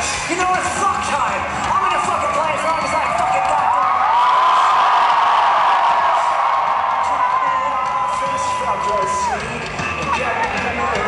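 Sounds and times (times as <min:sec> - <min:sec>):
crowd cheering and whooping: 0:01.8 - 0:11.0.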